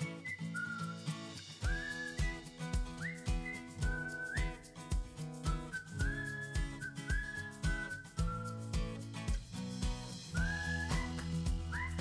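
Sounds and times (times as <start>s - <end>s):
whistled melody: 0.0s - 12.0s
beat and bass: 7.6s - 12.0s.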